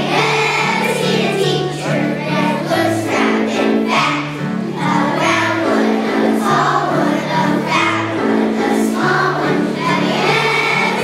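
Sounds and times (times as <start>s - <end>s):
children's choir singing: 0.0s - 11.0s
instrumental accompaniment: 0.0s - 11.0s.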